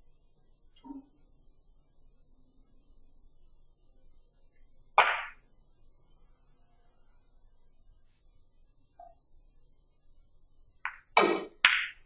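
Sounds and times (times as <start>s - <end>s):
billiard cue striking ball: 5.0s - 5.4s, 10.9s - 12.0s.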